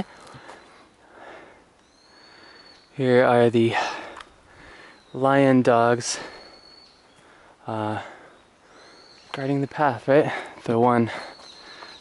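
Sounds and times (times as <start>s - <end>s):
person breathing hard: 0.0s - 2.8s, 3.8s - 5.0s, 7.2s - 9.1s.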